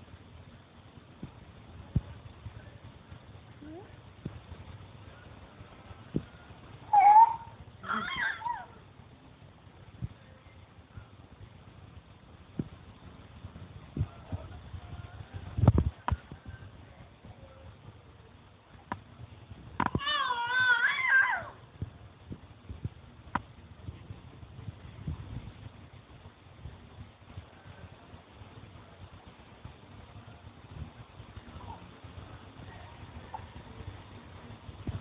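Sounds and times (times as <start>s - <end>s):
baby squealing: 6.9s - 8.7s.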